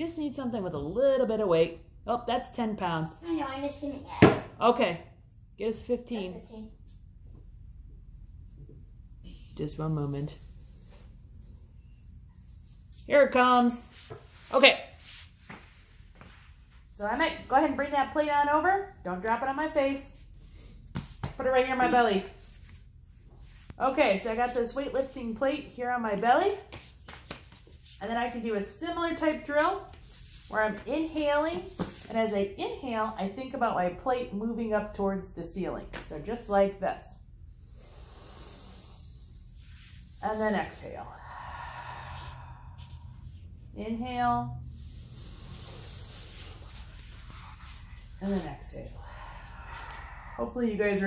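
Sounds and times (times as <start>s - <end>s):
rustling on a foam mat: 10.4s - 16.9s, 20.1s - 25.1s, 26.6s - 28.7s, 29.7s - 32.4s
deep breath inhale: 37.5s - 39.6s, 41.0s - 43.4s, 44.6s - 46.8s, 48.9s - 50.6s.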